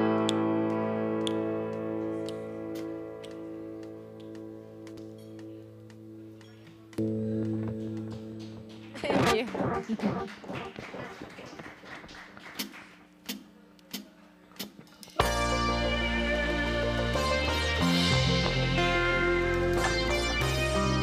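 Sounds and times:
electric guitar chord ringing: 0:00.0 - 0:06.3, 0:07.0 - 0:09.0, 0:15.2 - 0:21.0
drumstick count-in clicks: 0:12.6 - 0:14.8.

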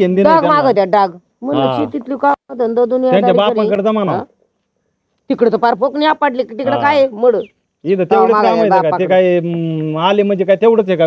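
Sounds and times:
person talking: 0:00.0 - 0:04.3, 0:05.3 - 0:10.2.

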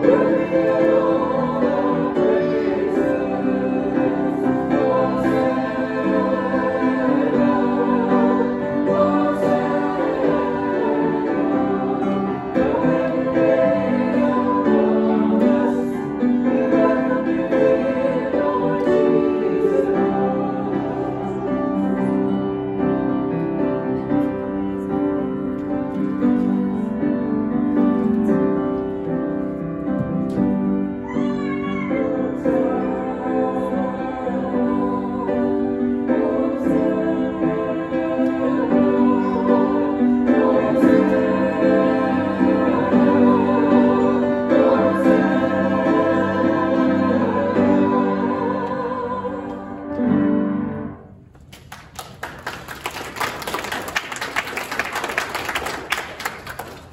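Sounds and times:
grand piano chords: 0:00.0 - 0:51.4
congregation applauding: 0:51.4 - 0:56.9.

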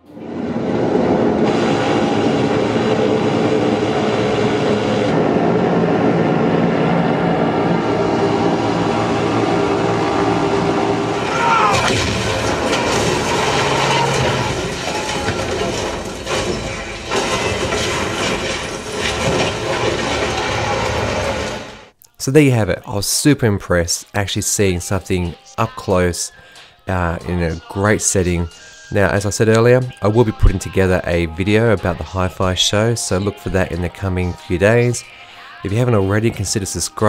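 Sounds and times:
bomber aircraft engines drone: 0:00.0 - 0:21.9
sharp cracks and knocks: 0:11.7 - 0:21.6.

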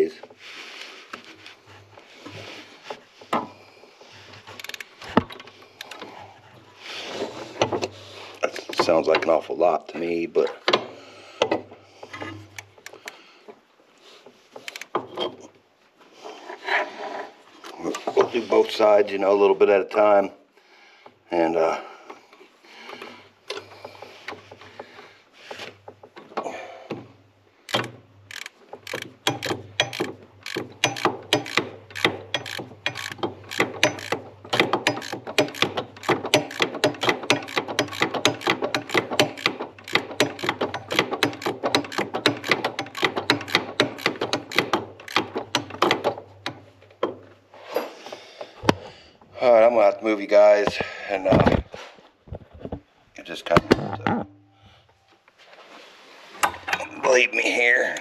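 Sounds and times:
ratchet wrench clicking: 0:27.7 - 0:46.1.

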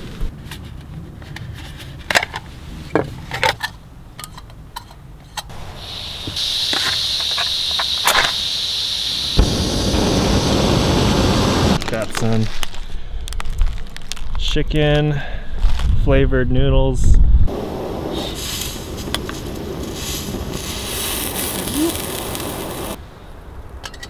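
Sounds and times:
burner flame low rush: 0:05.5 - 0:11.8, 0:17.5 - 0:23.0
steady gas hiss: 0:05.5 - 0:11.8, 0:17.5 - 0:23.0.

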